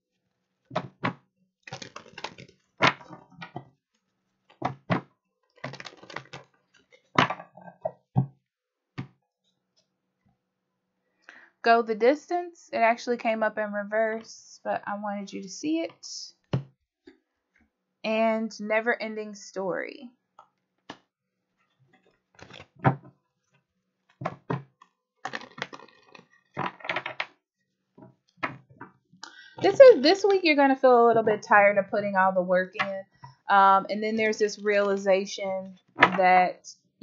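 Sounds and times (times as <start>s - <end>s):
cards slapping and rustling: 0.8s - 3.2s, 4.6s - 7.4s, 22.4s - 23.0s, 25.3s - 27.2s.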